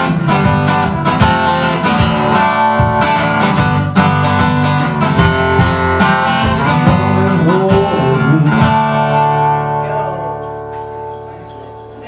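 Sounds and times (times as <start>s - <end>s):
acoustic guitar blues: 0.0s - 12.0s.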